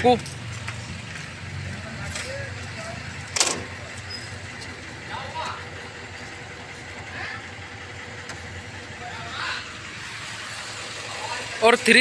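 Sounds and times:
faint voices: 1.6 - 12.0.

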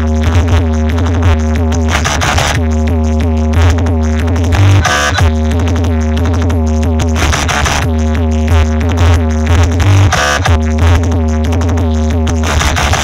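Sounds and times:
loud electronic dance music: 0.0 - 13.0.

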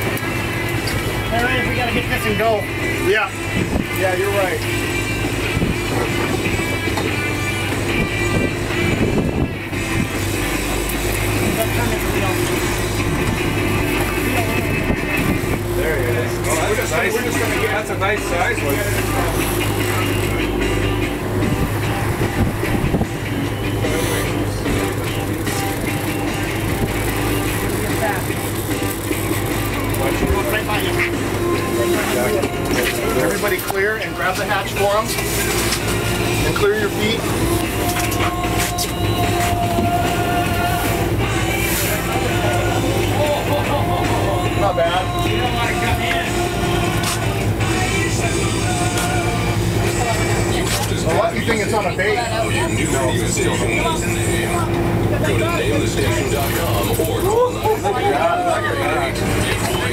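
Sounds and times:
boat engine humming: 0.0 - 59.9
radio music: 10.2 - 59.9.

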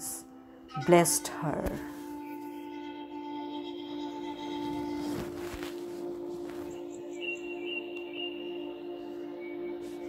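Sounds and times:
low ambient drone: 5.7 - 10.0.

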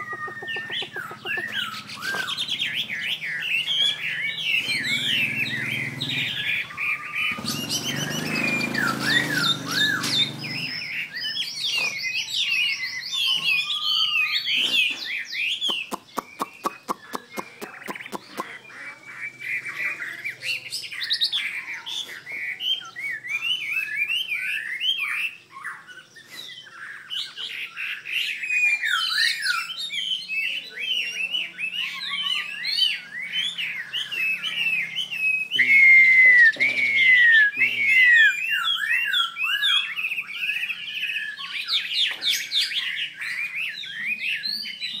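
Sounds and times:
bird warbling song: 0.0 - 45.0.

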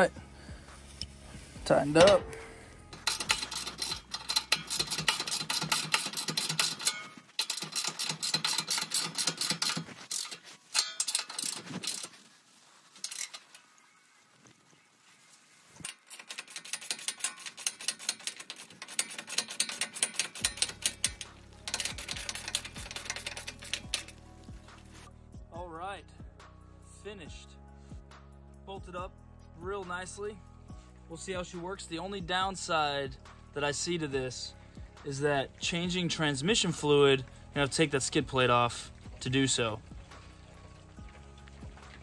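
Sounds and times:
ratchet wrench clicking rapidly: 2.9 - 12.1, 15.8 - 25.0.

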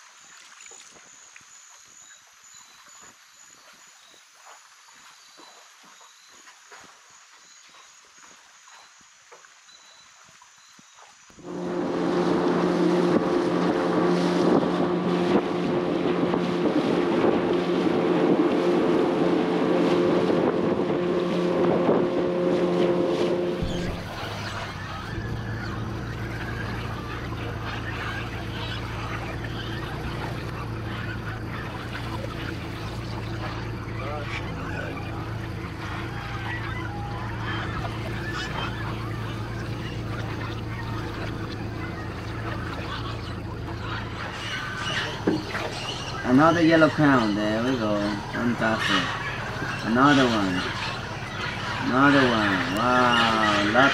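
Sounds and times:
outboard motor running: 11.3 - 53.9
parrots calling and squawking: 23.6 - 53.9.

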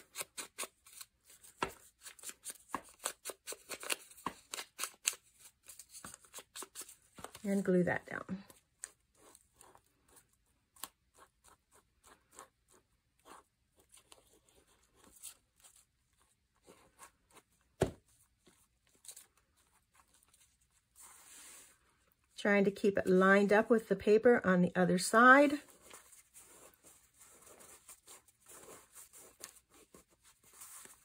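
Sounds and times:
paper rustling: 0.0 - 7.6, 25.5 - 31.0.

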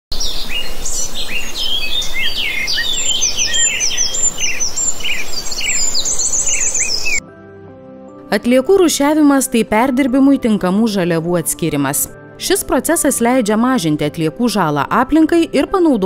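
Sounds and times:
songbirds chirping and singing: 0.2 - 7.2.

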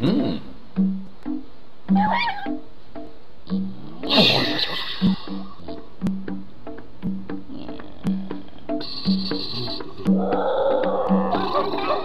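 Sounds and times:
plucked bass cartoon music: 0.0 - 12.0
squeaky animal-like cry: 1.9 - 2.6, 10.1 - 12.0.

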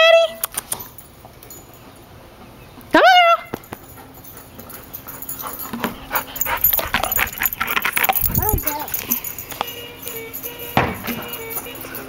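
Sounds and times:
dog whining: 4.2 - 9.4.

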